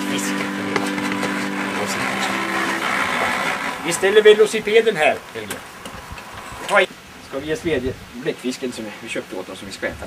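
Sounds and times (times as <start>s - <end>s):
small engine humming: 0.0s - 6.8s.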